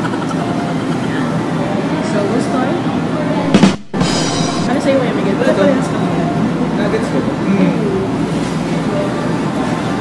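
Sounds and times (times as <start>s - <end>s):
restaurant background noise: 0.0s - 10.0s
short loud burst: 3.4s - 4.7s.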